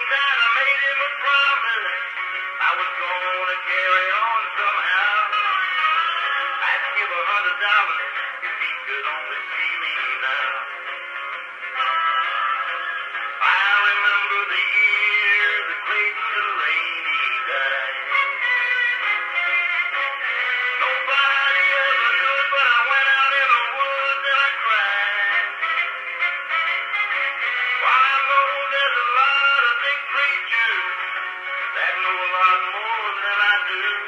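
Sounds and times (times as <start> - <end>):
country song on phonograph: 0.0 - 34.0
person singing: 0.0 - 34.0.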